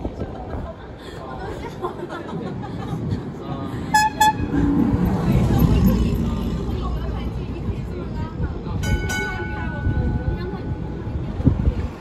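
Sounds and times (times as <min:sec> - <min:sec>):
car horn beeps: 0:03.9 - 0:04.6.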